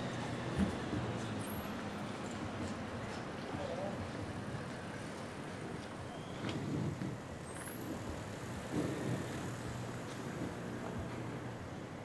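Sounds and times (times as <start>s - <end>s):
road traffic passing: 0.0s - 12.0s.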